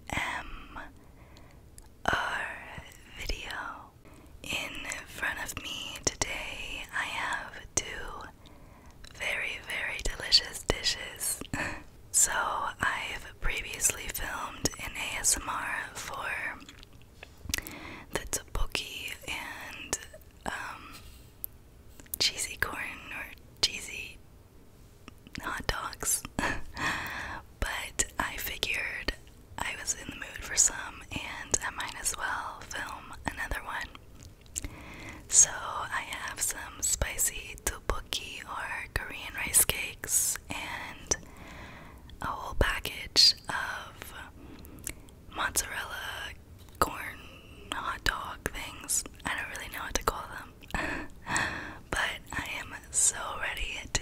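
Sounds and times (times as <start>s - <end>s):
woman whispering: 0.0s - 1.0s, 2.0s - 8.4s, 9.0s - 16.7s, 18.0s - 21.0s, 22.2s - 24.2s, 25.1s - 34.0s, 35.3s - 41.2s, 42.2s - 44.4s, 45.3s - 54.0s.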